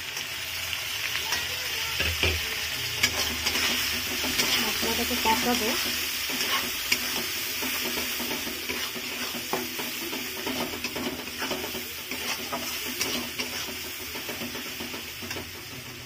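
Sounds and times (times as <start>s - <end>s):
masala sizzling in hot oil: 0.0s - 16.0s
spatula scraping metal pan: 3.0s - 16.0s.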